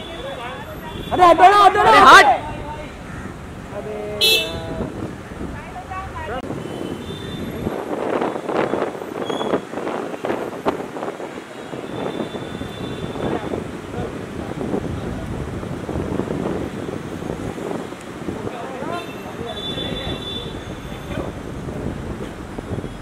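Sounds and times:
traffic: 0.0s - 23.0s
wind buffeting microphone: 0.0s - 23.0s.

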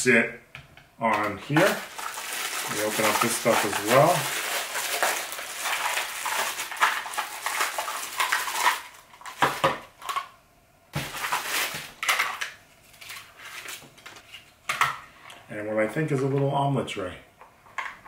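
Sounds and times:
plastic packaging crinkling: 1.1s - 10.3s, 11.0s - 14.5s.

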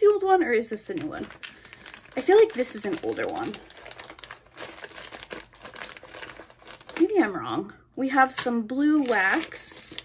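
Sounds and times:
plastic packaging crinkling: 0.9s - 7.2s, 8.7s - 10.0s.

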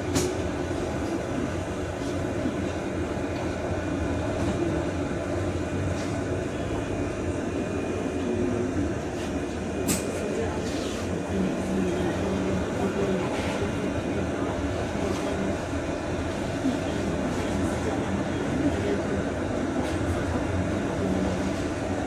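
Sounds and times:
electric bus drive hum: 0.0s - 22.0s.

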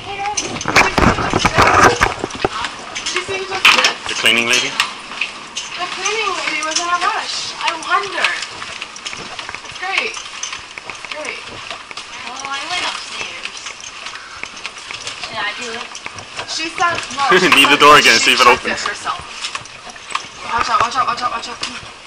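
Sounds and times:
handling clatter: 0.0s - 22.0s
people talking and calling out: 0.0s - 22.0s.

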